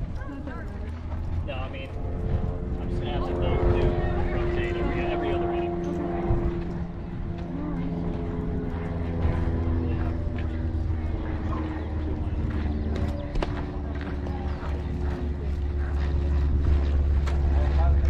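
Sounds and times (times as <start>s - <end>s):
engine drone: 0.0s - 18.0s
faint voices: 0.0s - 18.0s
low rumble: 0.0s - 18.0s.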